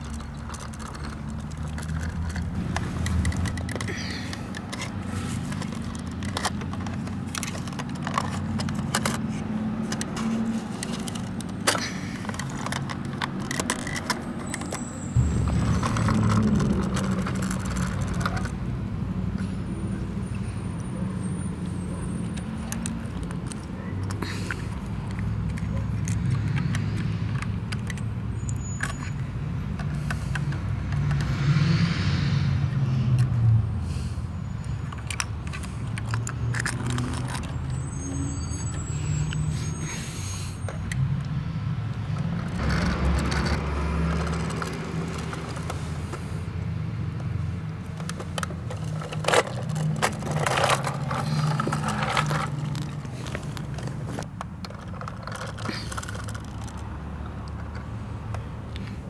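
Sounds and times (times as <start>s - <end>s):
metallic clatter and scraping: 0.0s - 18.6s, 34.8s - 40.0s, 42.1s - 46.4s, 47.4s - 56.9s
garbage truck engine rumbling: 0.0s - 30.9s, 33.4s - 59.0s.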